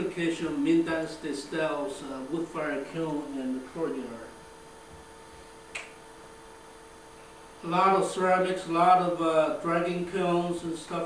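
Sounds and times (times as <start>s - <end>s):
electrical hum: 0.0s - 11.0s
sharp click: 5.7s - 6.0s.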